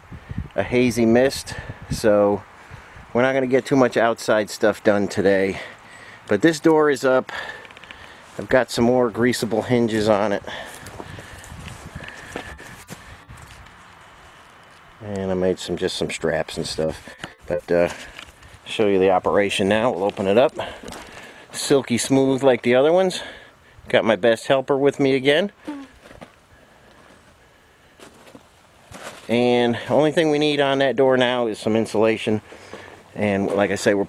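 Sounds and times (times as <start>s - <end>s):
faint outdoor background: 0.0s - 34.0s
faint footsteps and scuffs: 10.5s - 14.9s.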